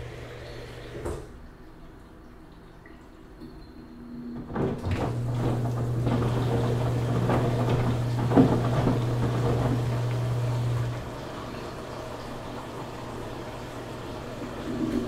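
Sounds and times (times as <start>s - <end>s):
washing machine motor hum: 0.0s - 1.5s, 3.9s - 15.0s
washing machine rattling and knocking: 4.4s - 15.0s.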